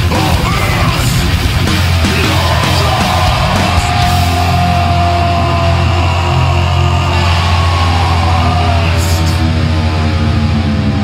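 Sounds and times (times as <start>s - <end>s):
hardcore punk music: 0.0s - 11.0s.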